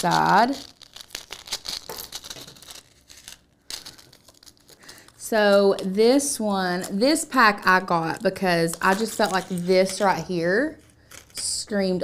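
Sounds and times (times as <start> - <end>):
packaging crinkling and rustling: 0.0 - 7.2, 8.0 - 11.4.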